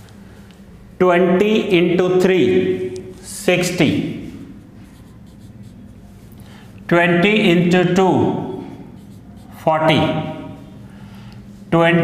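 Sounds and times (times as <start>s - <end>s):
marker pen on whiteboard: 2.8s - 6.6s, 7.8s - 10.8s.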